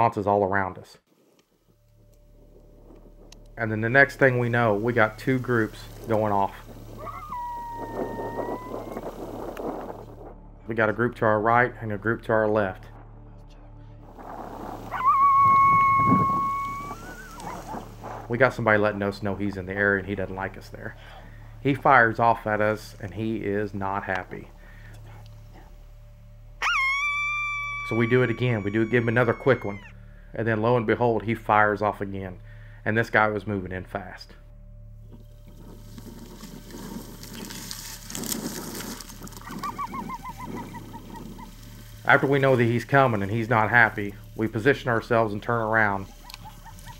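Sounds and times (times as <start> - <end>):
low rustle: 1.1 - 10.6, 13.9 - 19.7, 34.5 - 46.9
coyotes yipping and howling: 6.8 - 9.5, 14.3 - 18.3, 26.6 - 30.0, 39.4 - 42.0, 45.6 - 46.9
long steady howl: 6.9 - 9.7, 14.3 - 18.3, 26.6 - 30.0.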